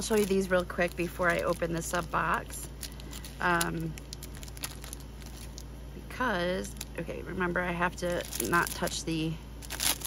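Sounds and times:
packaging clicks and rustles: 0.0s - 5.7s, 8.0s - 10.0s
steady low hum: 0.0s - 10.0s.

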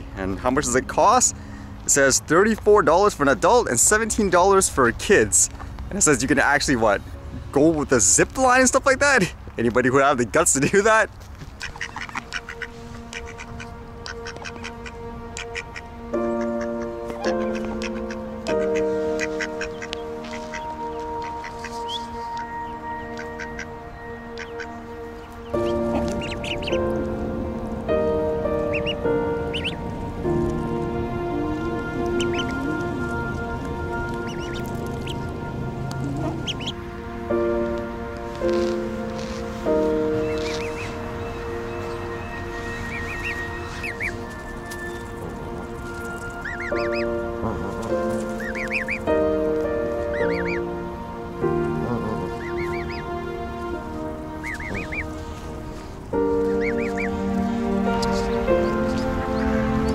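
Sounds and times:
background music of sustained chords: 0.0s - 59.9s
ducklings peeping: 11.5s - 36.8s, 38.4s - 50.7s, 51.7s - 59.9s.

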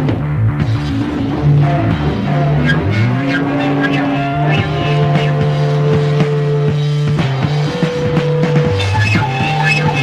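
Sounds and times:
heavy psychedelic rock music: 0.0s - 10.0s
low note sliding up in pitch: 1.3s - 6.9s.

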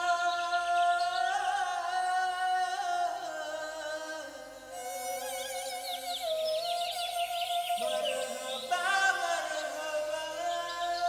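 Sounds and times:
music with long held notes: 1.1s - 11.0s.

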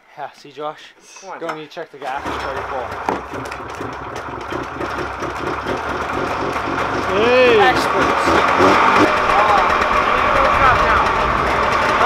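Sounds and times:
voices: 0.1s - 3.1s, 6.9s - 12.0s
snowmobile engine idling: 2.1s - 12.0s.

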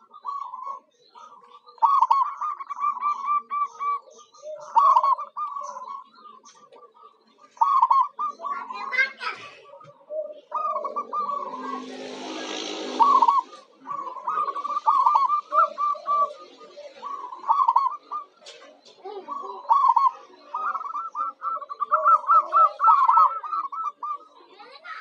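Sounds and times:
doves cooing: 0.0s - 25.0s
noisy background sound: 0.0s - 25.0s.

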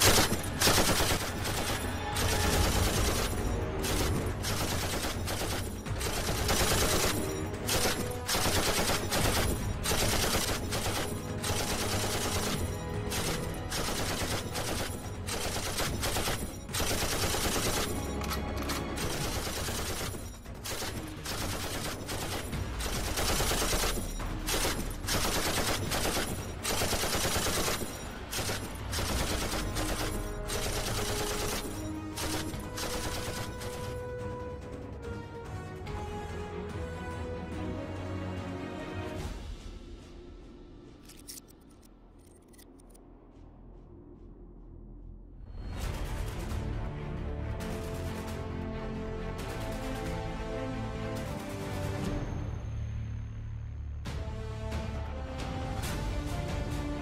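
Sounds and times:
machine-gun fire: 0.0s - 34.1s
background music: 0.0s - 57.0s.

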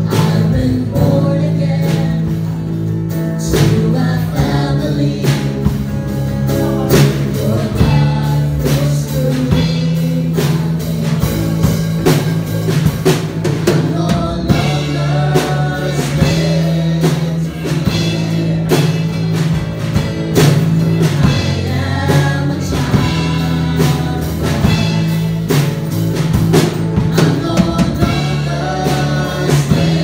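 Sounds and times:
voices singing together: 0.0s - 2.7s, 3.4s - 25.8s, 26.5s - 30.0s
acoustic guitar: 0.0s - 30.0s
drums steady beat: 0.0s - 30.0s
electric bass: 0.0s - 30.0s.

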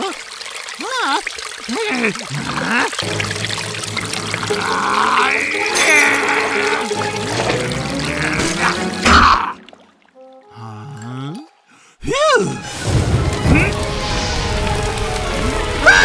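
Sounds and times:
water pouring and splashing: 0.0s - 10.4s, 12.6s - 16.0s
music: 3.0s - 11.7s, 12.3s - 16.0s.

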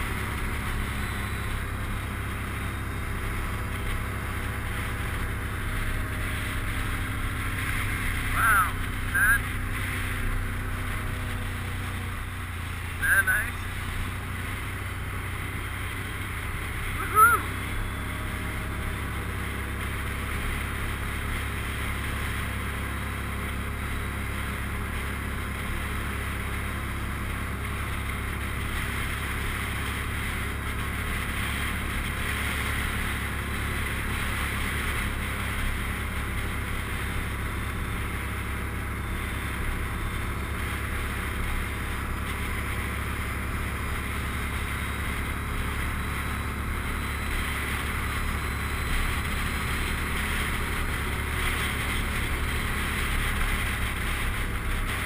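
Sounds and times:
atv engine running: 0.0s - 55.0s.

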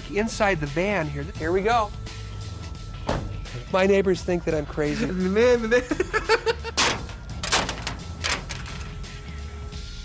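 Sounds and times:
kibble rattling against van body: 6.8s - 9.0s.

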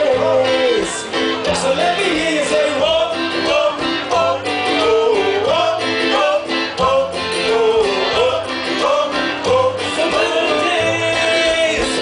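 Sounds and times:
live band with guitar: 0.0s - 12.0s
man singing: 0.0s - 12.0s.

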